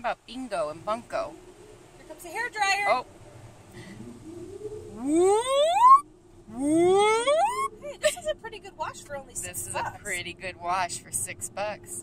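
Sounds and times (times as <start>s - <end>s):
people talking: 0.0s - 1.4s, 2.0s - 3.0s, 7.8s - 12.0s
woman whooing: 7.1s - 8.3s.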